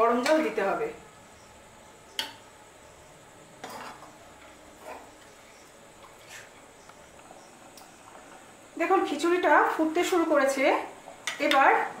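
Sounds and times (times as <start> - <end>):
spatula scraping pot: 3.6 - 4.1.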